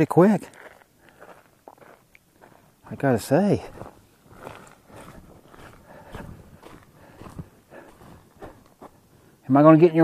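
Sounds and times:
man speaking: 0:00.0 - 0:00.6, 0:02.8 - 0:03.9, 0:09.4 - 0:10.0
footsteps on dirt: 0:00.2 - 0:09.3.

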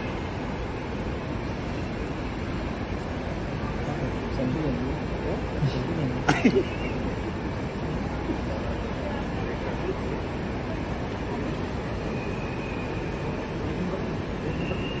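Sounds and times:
faint voices: 0:00.0 - 0:15.0.

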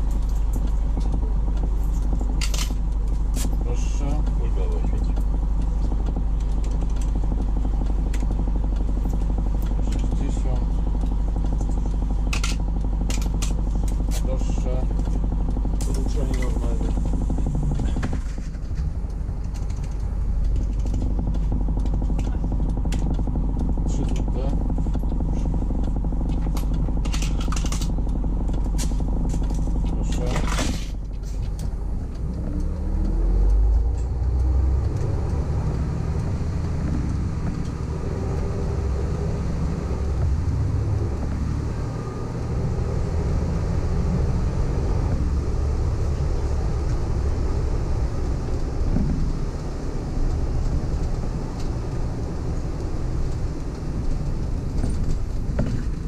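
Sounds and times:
bus diesel engine idling: 0:00.0 - 0:56.0.

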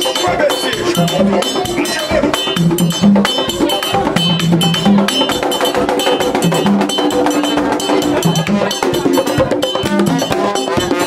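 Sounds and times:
hand drums fast rhythm: 0:00.0 - 0:11.0
metal bell struck: 0:00.0 - 0:11.0.

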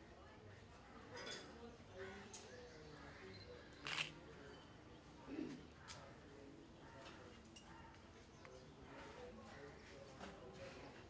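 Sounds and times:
faint background sounds: 0:00.0 - 0:11.0.

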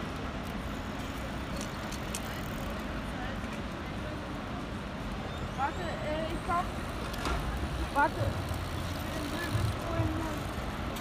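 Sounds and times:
people's voices: 0:01.1 - 0:11.0
bus engine rumbling: 0:06.3 - 0:11.0.

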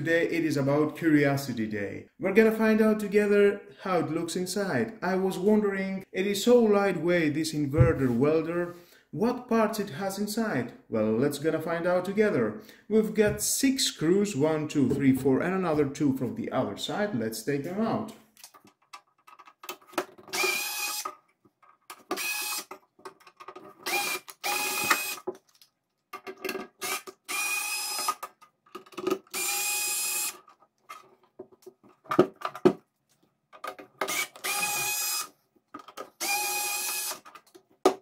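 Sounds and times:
electric screwdriver whirring: 0:20.3 - 0:21.1, 0:22.1 - 0:22.7, 0:23.8 - 0:25.2, 0:26.8 - 0:28.2, 0:29.3 - 0:30.4, 0:34.0 - 0:35.3, 0:36.2 - 0:37.2.

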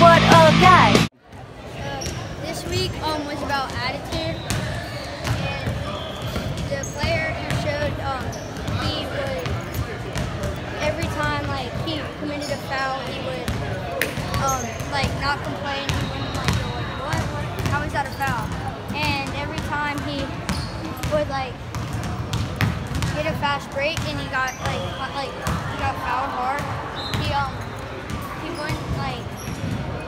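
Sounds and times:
children chattering: 0:01.4 - 0:21.6, 0:23.1 - 0:30.0
basketballs bouncing on wood floor: 0:03.5 - 0:11.9, 0:13.0 - 0:26.0, 0:26.6 - 0:30.0.

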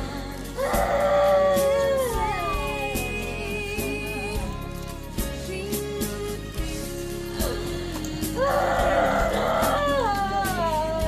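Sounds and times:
mourners wailing: 0:00.4 - 0:03.6, 0:08.3 - 0:11.0.

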